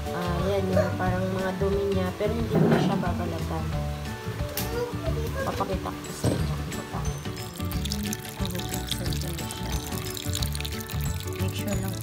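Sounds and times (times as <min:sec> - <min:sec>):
background music: 0:00.0 - 0:12.0
water splashing in steel bowl: 0:06.2 - 0:12.0.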